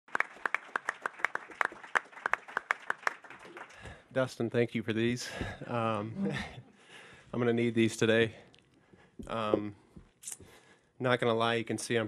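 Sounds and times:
audience applause: 0:00.1 - 0:04.1.

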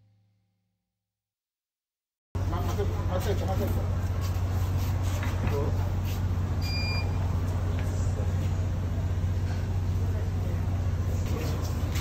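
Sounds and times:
road traffic: 0:02.4 - 0:12.0.

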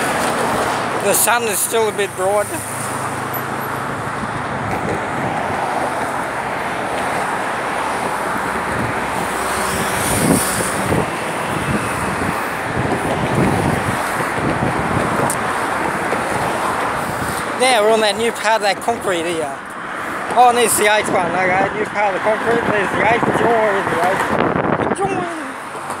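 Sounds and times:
passing cars: 0:00.0 - 0:26.0.

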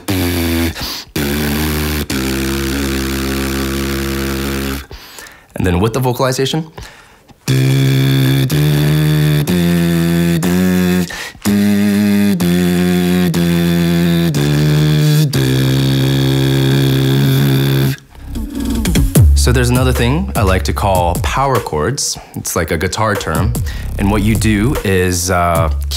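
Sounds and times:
beatbox lip buzz with singing: 0:00.0 - 0:05.9, 0:06.7 - 0:25.9.

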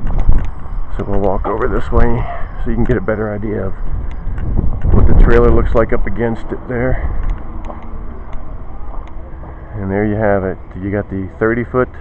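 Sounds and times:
wind rumbling on microphone: 0:00.0 - 0:11.1
faint ticks: 0:04.0 - 0:05.0.

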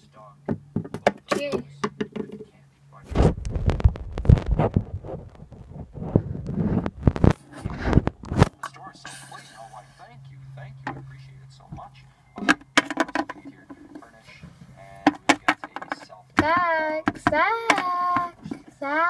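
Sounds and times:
low steady hum: 0:00.0 - 0:19.0
sharp knocks and taps: 0:00.5 - 0:02.5, 0:11.7 - 0:13.8, 0:15.0 - 0:18.7
child calling: 0:16.4 - 0:19.0.

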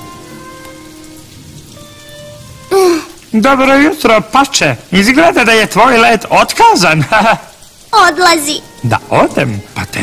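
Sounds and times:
steady rain falling: 0:00.0 - 0:10.0.

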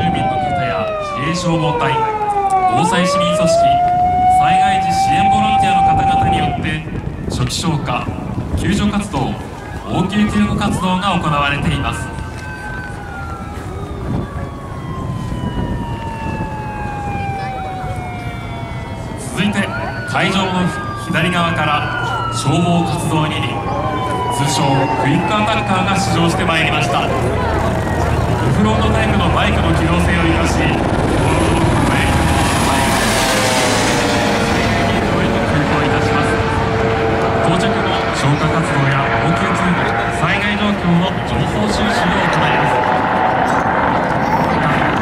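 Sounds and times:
siren wailing: 0:00.0 - 0:07.3, 0:09.4 - 0:45.0
helicopters flying low: 0:00.0 - 0:45.0
low rumble: 0:23.4 - 0:45.0.

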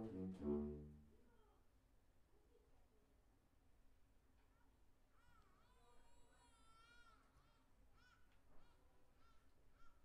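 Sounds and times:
saxophone ensemble soft notes: 0:00.0 - 0:01.2.

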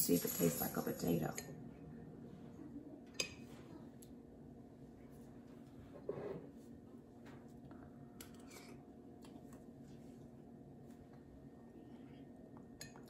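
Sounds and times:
low steady hum: 0:00.0 - 0:13.0
soft eating clicks: 0:07.7 - 0:09.7.

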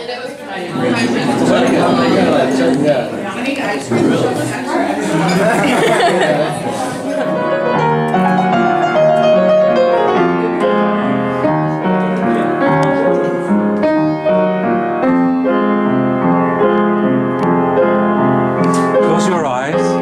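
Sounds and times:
upright piano playing chords: 0:00.7 - 0:20.0.

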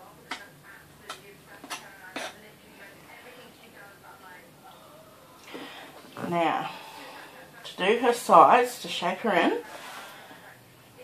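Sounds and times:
knife cutting cake on foil board: 0:01.1 - 0:02.4.

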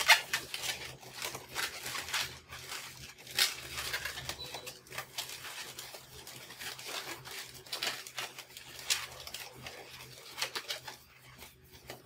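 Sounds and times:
balloons squeaking and rubbing: 0:00.0 - 0:12.0.

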